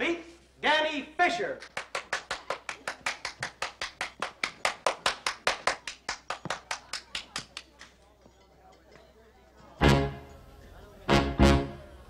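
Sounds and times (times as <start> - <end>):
fast rhythmic hand claps: 1.6 - 8.0.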